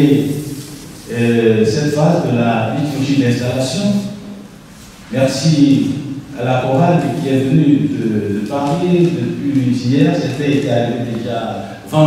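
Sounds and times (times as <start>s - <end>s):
man talking into a microphone: 0.0s - 4.3s, 5.1s - 12.0s.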